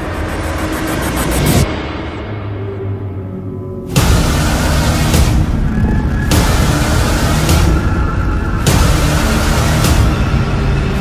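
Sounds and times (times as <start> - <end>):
low hum: 0.0 - 11.0
loud rumbling rushing noise: 3.9 - 11.0.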